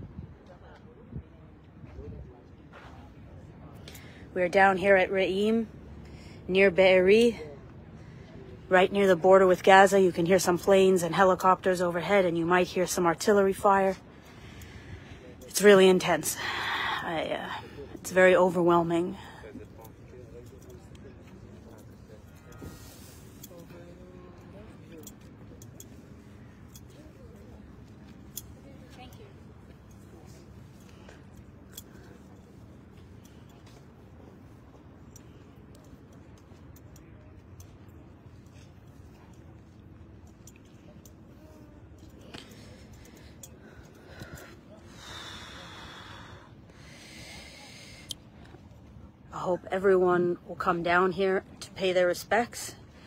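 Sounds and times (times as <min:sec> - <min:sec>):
faint distant voices: 0:00.0 - 0:49.5
faint hum: 0:00.0 - 0:53.0
faint outdoor background hiss: 0:00.0 - 0:53.0
person breathing close to microphone: 0:42.4 - 0:48.2.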